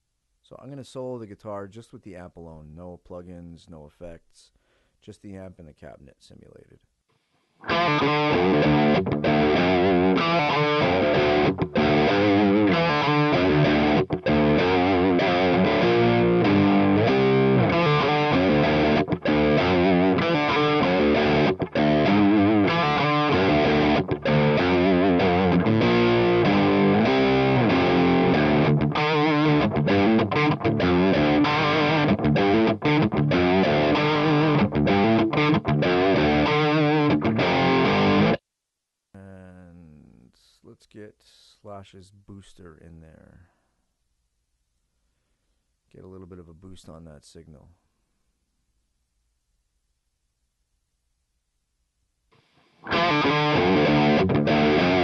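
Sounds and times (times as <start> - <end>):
distorted electric guitar: 7.6 - 38.4, 52.4 - 55.0.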